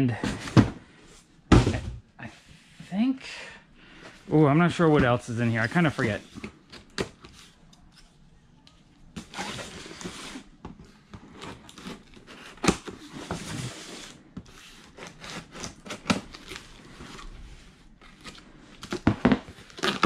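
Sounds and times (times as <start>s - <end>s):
scissors cutting packing tape: 19.6s - 20.0s.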